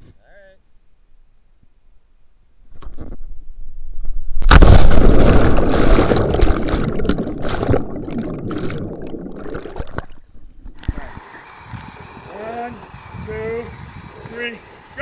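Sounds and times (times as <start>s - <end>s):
underwater rushing and bubbling: 4.4s - 11.2s.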